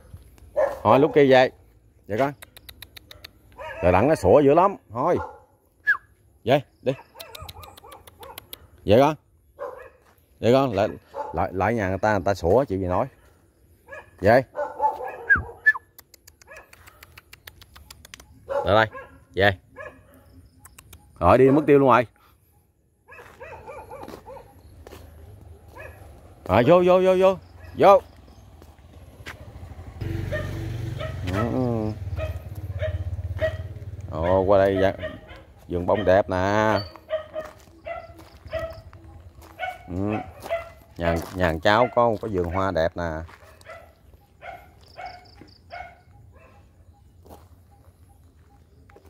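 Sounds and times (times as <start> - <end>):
faint dog bark: 0.1 - 1.6, 3.0 - 4.3, 5.0 - 5.6, 6.9 - 8.8, 9.6 - 12.5, 13.2 - 15.8, 16.4 - 17.2, 18.3 - 28.4, 30.3 - 49.0.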